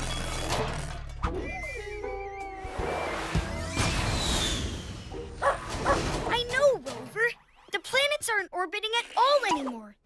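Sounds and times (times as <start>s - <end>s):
falling whistle: 1.5s - 5.3s.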